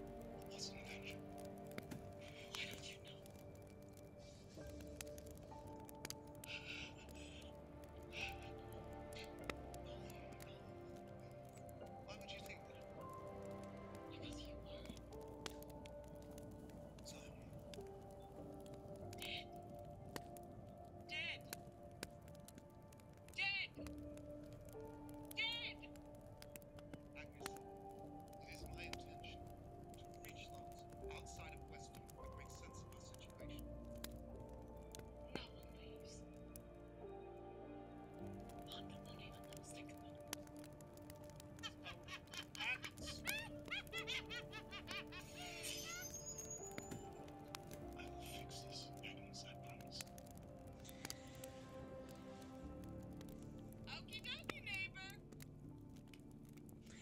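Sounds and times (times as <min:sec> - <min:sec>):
sustained music notes: 0:00.0 - 0:56.9.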